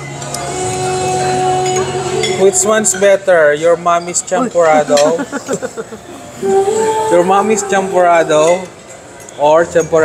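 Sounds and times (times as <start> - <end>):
person speaking: 4.0 - 5.5
held voiced tone: 4.3 - 5.2
laughter: 4.4 - 6.2.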